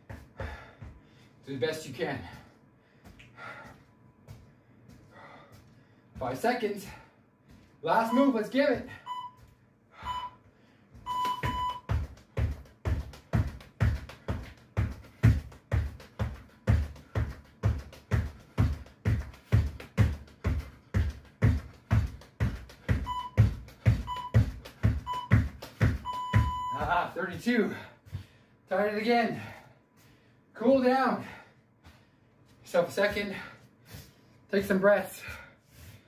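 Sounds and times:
interval timer beeps: 8.0 - 10.4, 11.1 - 12.0, 22.9 - 27.0
timer long tone: 10.0 - 10.4, 11.1 - 11.9, 23.0 - 25.4, 26.0 - 26.9
feet thudding on floor: 11.0 - 26.7.

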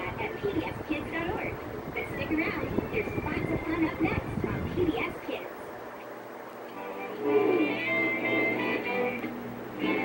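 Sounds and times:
television music with held tones: 0.0 - 10.0.

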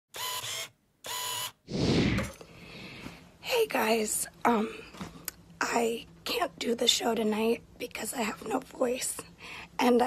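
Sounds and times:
whoosh: 1.7 - 2.4.

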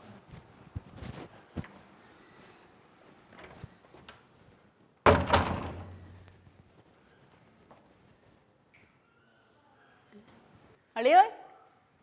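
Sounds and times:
door shutting with loud thud: 5.1 - 6.2.

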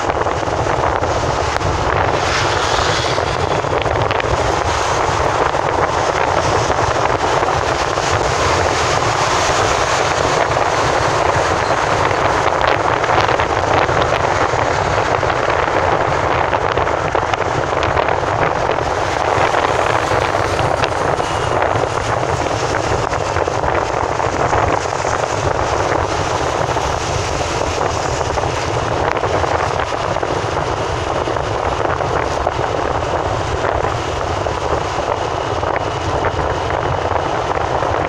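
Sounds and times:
car driving on highway: 0.0 - 38.0.

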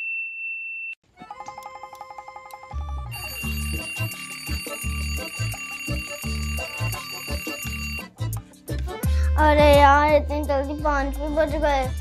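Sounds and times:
alarm clock ringing: 1.3 - 8.1
background music with bass beat: 4.0 - 12.0.

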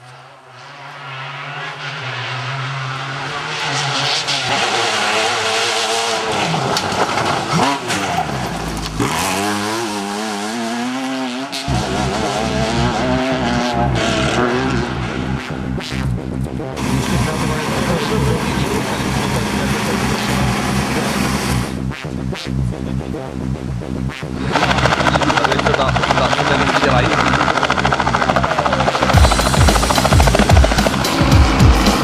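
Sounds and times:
racing car engines revving: 0.0 - 32.0.

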